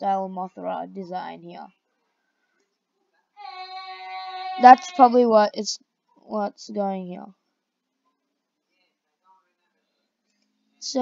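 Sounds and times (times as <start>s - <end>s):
high voice singing a note: 3.4s - 5.2s.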